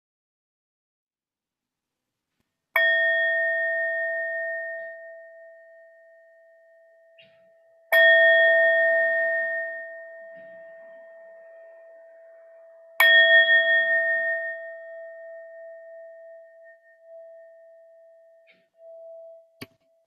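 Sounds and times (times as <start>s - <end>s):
singing bowl ringing: 2.8s - 20.0s.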